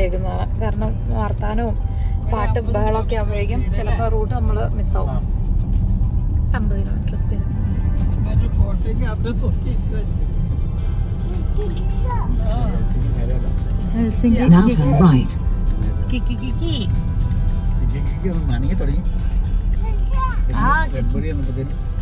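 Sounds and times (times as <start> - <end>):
road and engine rumble in car: 0.0 - 22.0.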